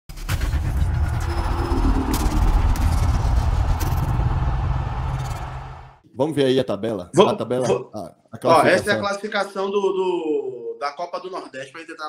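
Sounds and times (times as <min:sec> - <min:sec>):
swooshing hits: 0:00.1 - 0:06.0
deep steady rumble: 0:00.3 - 0:06.0.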